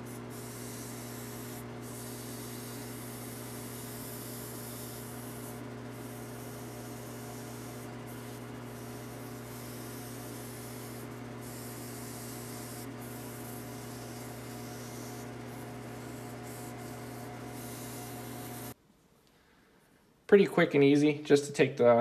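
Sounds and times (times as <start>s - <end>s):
lathe motor hum: 0.0s - 18.8s
scouring pad hissing on spindle: 0.0s - 18.8s.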